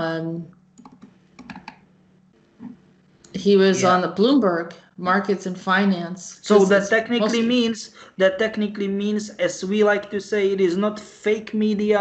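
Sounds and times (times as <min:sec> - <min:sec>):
computer mouse clicks: 0:00.8 - 0:01.8.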